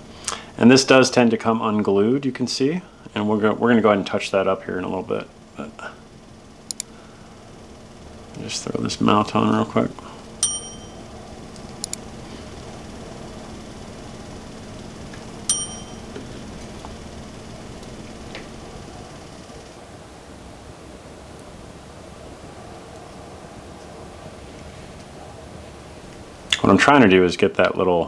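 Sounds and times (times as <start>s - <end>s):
metal hand tools clinking: 10.4s - 11.0s, 15.5s - 16.1s.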